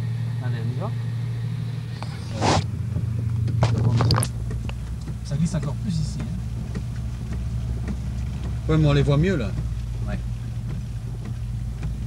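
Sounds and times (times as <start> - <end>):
car engine humming: 0.0 - 12.0
short rushing noise: 1.9 - 2.8
sharp clicks and knocks: 1.9 - 12.0.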